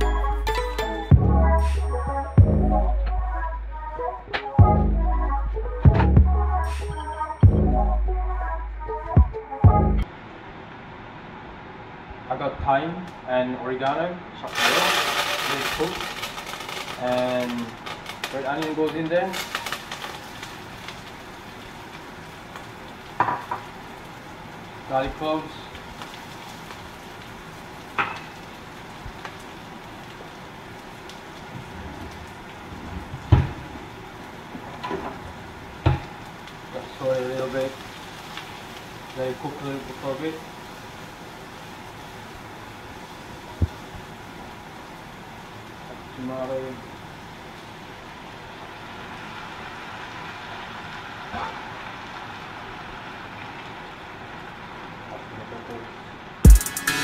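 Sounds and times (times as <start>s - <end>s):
electronic music with bass drum: 0.0s - 10.0s, 56.5s - 57.0s
pot hissing on gas stove: 14.4s - 34.6s, 35.2s - 54.9s
garlic and onion sizzling in oil: 14.4s - 56.4s.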